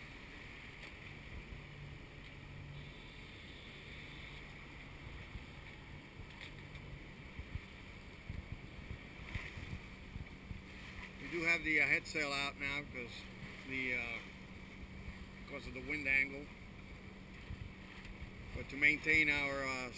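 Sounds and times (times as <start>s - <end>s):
low engine drone: 0.0s - 19.9s
water rushing along hull: 0.0s - 19.9s
wind buffeting microphone: 4.6s - 11.3s, 17.0s - 19.3s.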